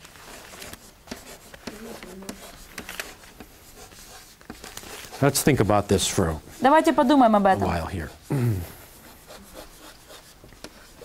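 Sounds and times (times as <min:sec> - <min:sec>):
chalk scratching on blackboard: 0:00.1 - 0:11.0.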